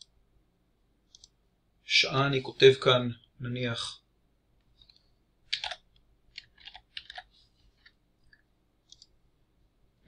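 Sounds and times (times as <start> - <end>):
mouse clicks: 1.1 - 1.4, 8.3 - 9.2.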